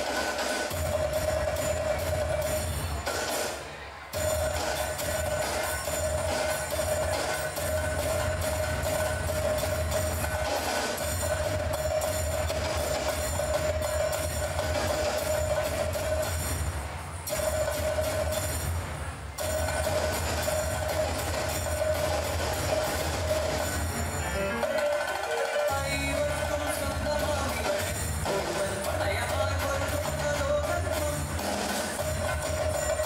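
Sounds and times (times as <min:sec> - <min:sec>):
dance music: 0:00.0 - 0:33.0
fast rhythmic percussion: 0:00.0 - 0:33.0.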